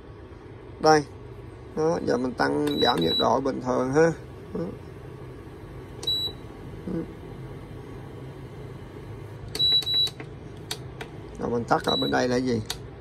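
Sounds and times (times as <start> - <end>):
induction hob humming: 0.0 - 13.0
control panel beeps: 2.0 - 3.6, 6.0 - 6.5, 9.5 - 10.3, 11.7 - 12.8.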